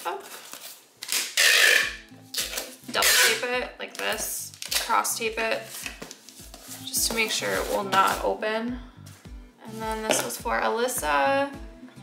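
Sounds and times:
packing tape ripping: 0.2s - 5.0s
background music with steady beat: 1.1s - 12.0s.

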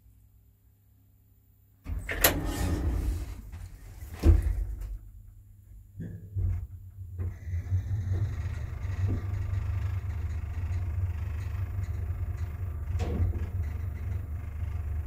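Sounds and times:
elevator car low rumble: 1.9s - 15.0s.

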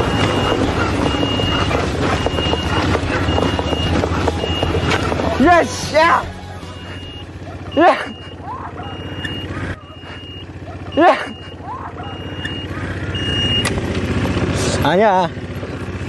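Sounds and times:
high single-tone beeper: 0.0s - 10.5s, 11.2s - 13.7s
all-terrain vehicle engine running: 0.0s - 16.0s
loud shouts: 7.5s - 10.0s, 10.8s - 12.8s.

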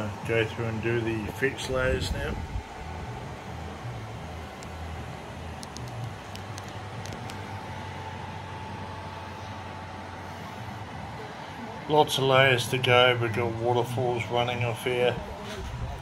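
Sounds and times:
faint whine: 0.0s - 16.0s
low mechanical hum: 0.0s - 16.0s.

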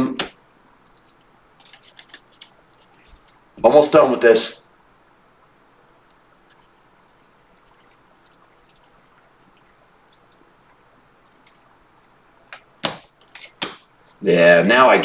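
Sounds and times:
low room hiss: 0.0s - 15.0s
soft flicks of trading cards: 0.2s - 3.4s.

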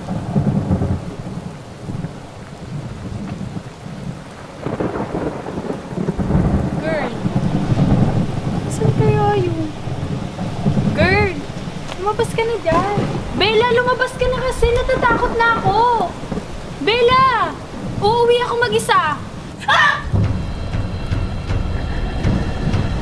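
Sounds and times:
steady rain: 0.0s - 23.0s
thunder rumbling: 0.0s - 23.0s.

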